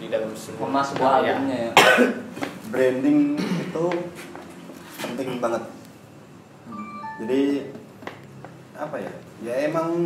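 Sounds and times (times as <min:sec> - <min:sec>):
short electronic chime: 0:06.7 - 0:07.6.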